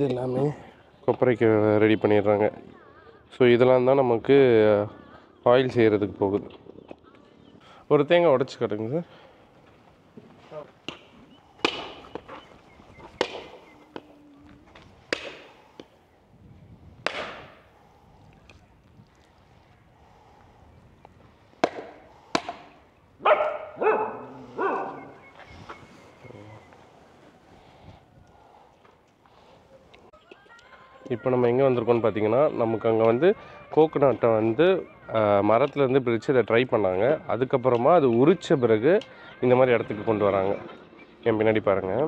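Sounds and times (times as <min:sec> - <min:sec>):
coconuts knocking: 0:11.6 - 0:12.2, 0:13.2 - 0:14.0, 0:15.1 - 0:15.6, 0:17.0 - 0:17.6, 0:21.6 - 0:22.7.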